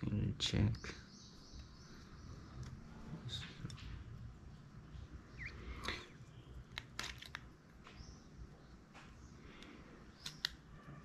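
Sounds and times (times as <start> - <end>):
plastic clicks: 6.6 - 8.0, 8.9 - 10.7.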